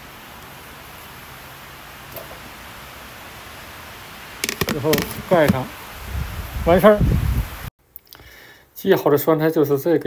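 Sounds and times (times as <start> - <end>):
knocks on plastic bucket lid: 4.4 - 5.7.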